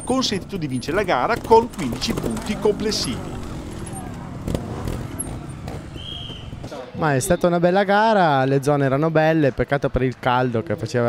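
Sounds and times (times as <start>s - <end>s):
motorcycle engine at low revs: 0.0s - 6.7s.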